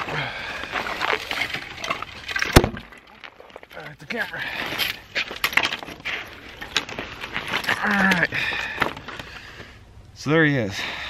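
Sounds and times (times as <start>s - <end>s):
ice and metal trap clinking: 0.8s - 8.3s.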